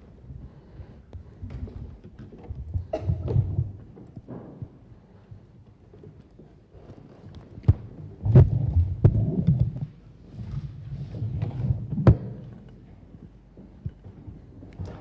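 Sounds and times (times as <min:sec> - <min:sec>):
microphone handling rumbles: 0:01.2 - 0:05.2, 0:07.2 - 0:12.7.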